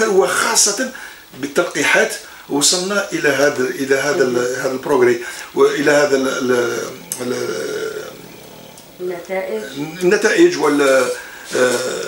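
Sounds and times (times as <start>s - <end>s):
man saying ehh: 3.1s - 8.3s, 9.7s - 12.0s.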